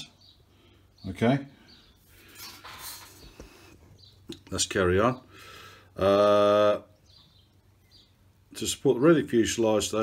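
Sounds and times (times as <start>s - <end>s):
hands rustling on workbench: 2.0s - 4.0s.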